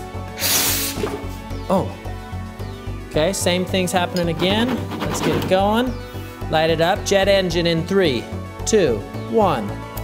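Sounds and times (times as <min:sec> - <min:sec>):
background music with steady beat: 0:00.0 - 0:10.0
short hiss of vapour igniting: 0:00.3 - 0:01.1.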